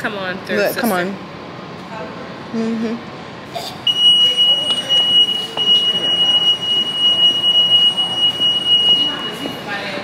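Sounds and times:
high-pitched alarm tone: 0:03.9 - 0:09.8.

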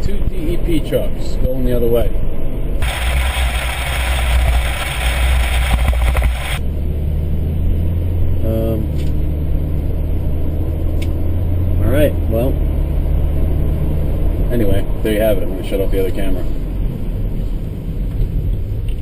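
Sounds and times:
loud rushing noise: 0:02.8 - 0:06.6.

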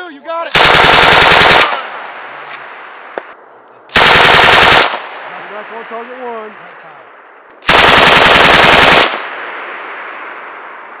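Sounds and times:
machine gun burst: 0:00.5 - 0:01.8, 0:04.0 - 0:05.1, 0:07.7 - 0:09.2.

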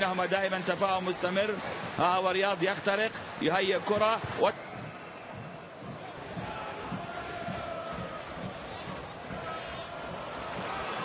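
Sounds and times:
stadium crowd murmur: 0:00.0 - 0:11.0.

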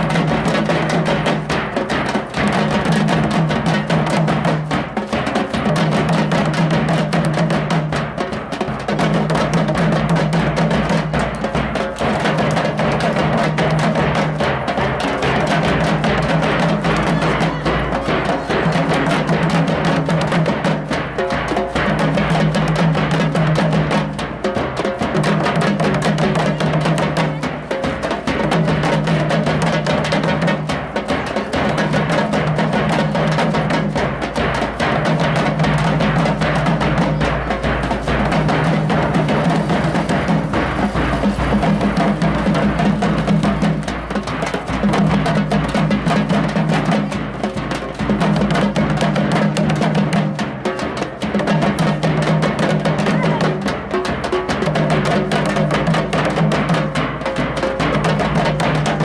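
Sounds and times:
bass drums beaten in fast rhythm: 0:00.0 - 0:59.0.

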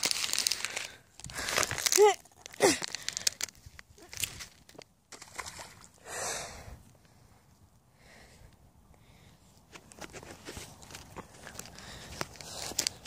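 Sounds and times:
stick splashing into water: 0:05.1 - 0:06.0
footsteps crackling on dry mud: 0:09.7 - 0:13.0.

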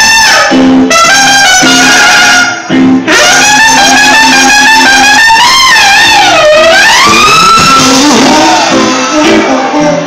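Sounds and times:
jazz band playing: 0:00.0 - 0:10.0
trumpet playing long note: 0:00.0 - 0:10.0.

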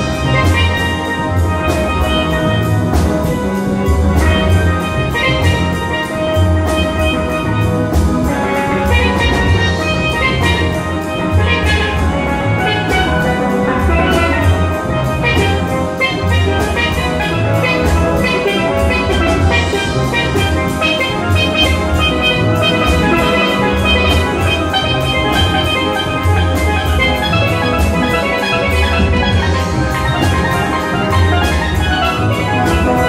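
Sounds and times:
drums: 0:00.0 - 0:33.0
steel drum band playing: 0:00.0 - 0:33.0.

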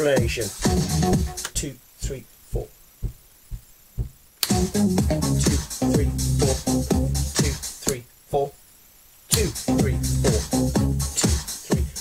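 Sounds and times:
house music track: 0:00.0 - 0:01.8, 0:02.5 - 0:08.0, 0:09.3 - 0:12.0
kick drum thumping: 0:02.6 - 0:05.2.

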